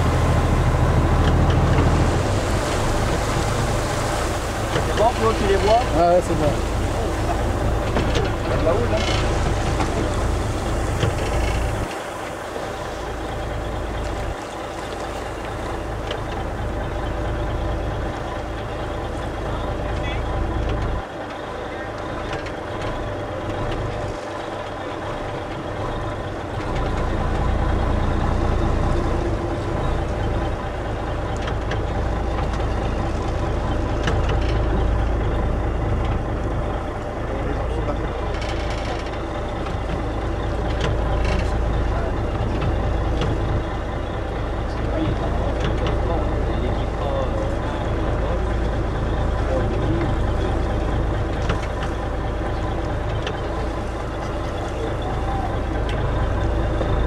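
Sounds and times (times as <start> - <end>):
boat engine idling: 0.0 - 57.0.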